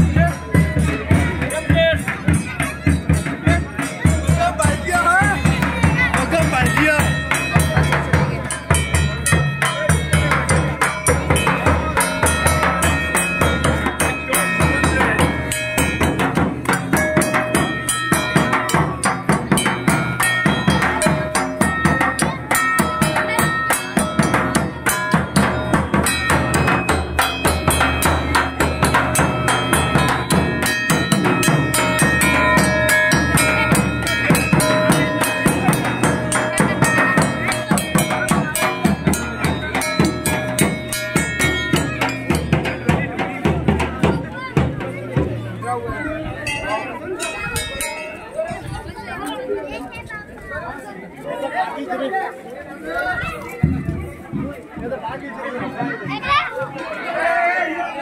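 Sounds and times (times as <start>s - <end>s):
other drumming: 0.0s - 48.3s.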